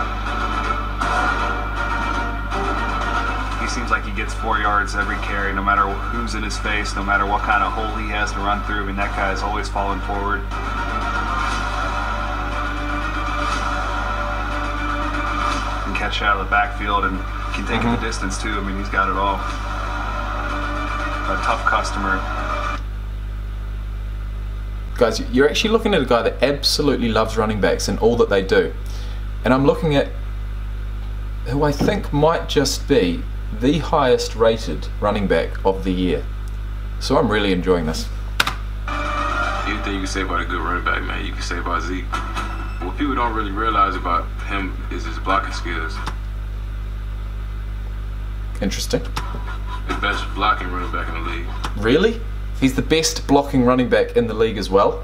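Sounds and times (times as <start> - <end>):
music with a voice: 0.0 - 22.8, 38.9 - 44.1, 49.8 - 52.2
steady low hum: 0.0 - 55.0.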